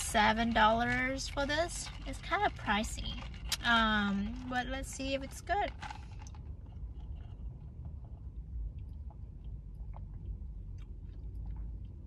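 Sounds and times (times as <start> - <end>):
low steady hum: 0.0 - 12.0
wet mouth chewing clicks: 7.4 - 12.0.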